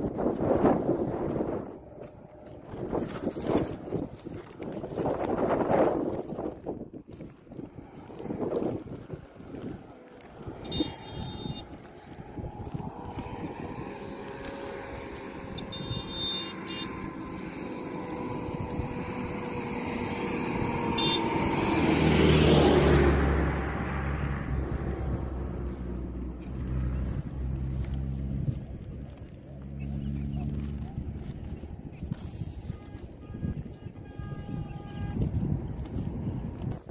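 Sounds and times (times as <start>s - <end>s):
low engine hum: 0.0s - 36.9s
motor vehicle passing: 0.0s - 36.9s.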